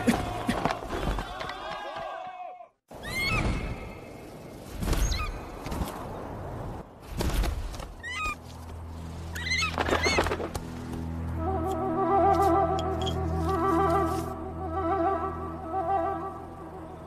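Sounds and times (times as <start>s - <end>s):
low sustained music notes: 10.6s - 17.0s.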